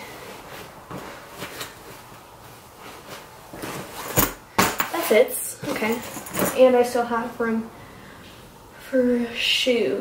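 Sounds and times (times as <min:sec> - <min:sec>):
clothes rustling: 0:00.0 - 0:04.4, 0:05.0 - 0:07.0.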